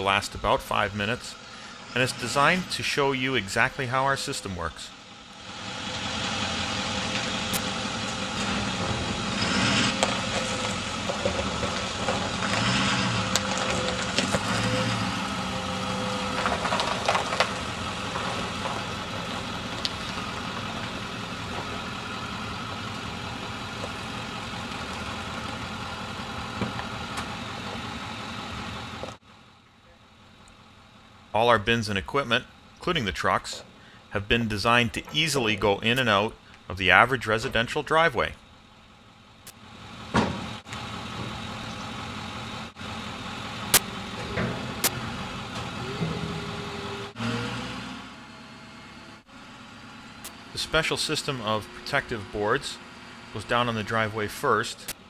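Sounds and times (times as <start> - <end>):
outdoor noise: 0.0 - 55.0
truck engine running: 0.0 - 55.0.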